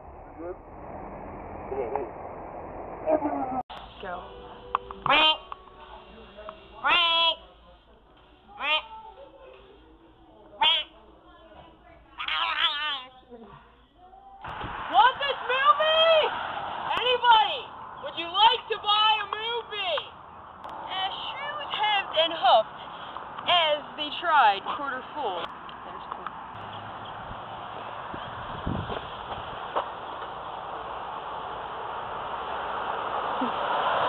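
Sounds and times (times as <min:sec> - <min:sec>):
young voices laughing and squealing: 0:03.0 - 0:03.6
steady rushing noise: 0:14.5 - 0:19.3.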